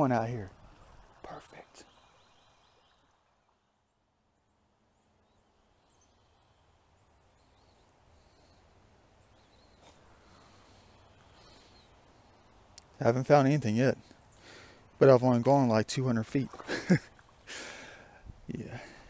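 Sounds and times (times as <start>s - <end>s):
faint outdoor ambience: 0.0s - 19.0s.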